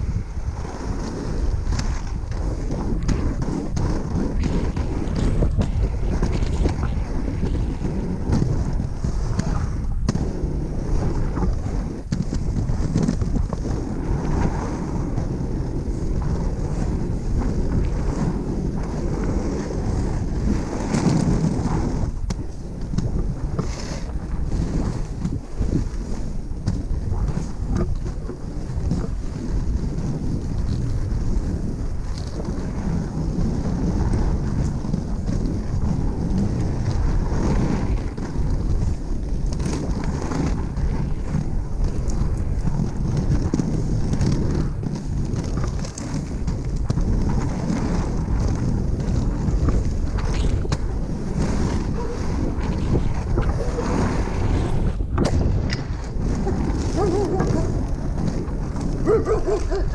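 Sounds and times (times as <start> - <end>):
wheels rolling over asphalt: 0.0 - 59.9
wind buffeting microphone: 0.0 - 59.9.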